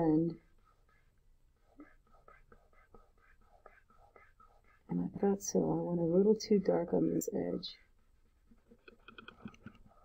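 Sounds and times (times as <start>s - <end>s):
fingertip rubbing paper: 0.7s - 4.9s.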